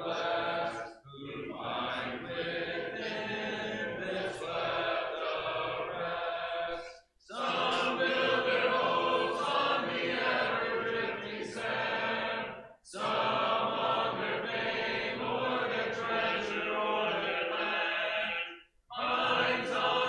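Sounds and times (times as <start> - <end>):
congregation singing a hymn: 0.0 - 20.0.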